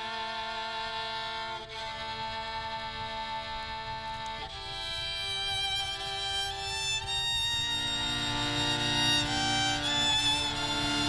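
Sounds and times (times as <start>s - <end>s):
sustained chord: 0.0s - 11.0s
violin long held notes: 0.0s - 11.0s.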